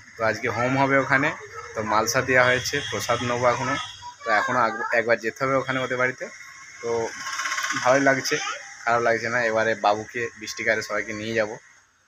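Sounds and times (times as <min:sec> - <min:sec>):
man talking: 0:00.2 - 0:07.2, 0:07.8 - 0:11.6.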